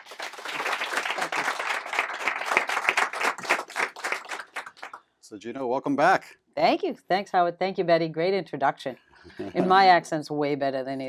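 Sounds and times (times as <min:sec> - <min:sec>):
small audience applauding: 0:00.0 - 0:05.0.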